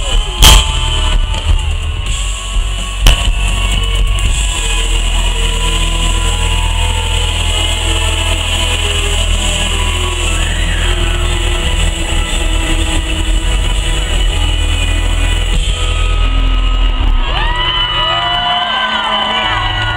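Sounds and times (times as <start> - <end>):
live band music with heavy bass: 0.0 - 19.9.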